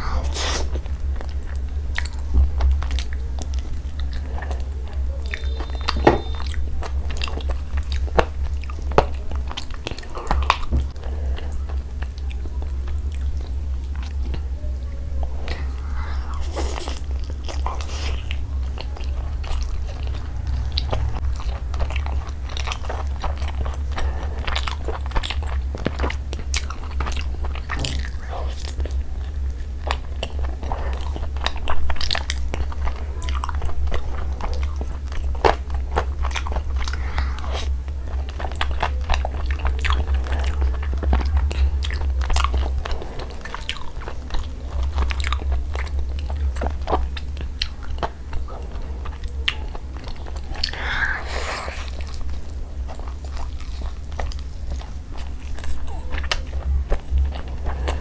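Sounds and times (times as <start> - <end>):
low hum: 0.0 - 58.0
chewing and biting: 0.7 - 14.4, 15.4 - 58.0.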